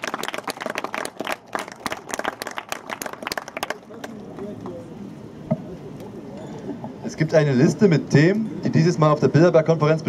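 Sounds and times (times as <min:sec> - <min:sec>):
small crowd applauding: 0:00.0 - 0:04.3.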